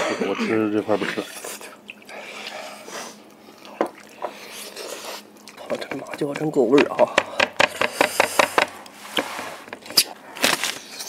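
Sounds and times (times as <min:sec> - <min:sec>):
person chewing meat off bone: 0:03.2 - 0:06.4.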